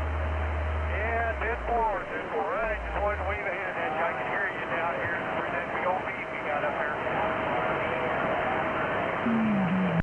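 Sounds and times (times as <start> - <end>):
radio band noise: 0.9 - 7.0
faint garbled radio voice: 0.9 - 8.5.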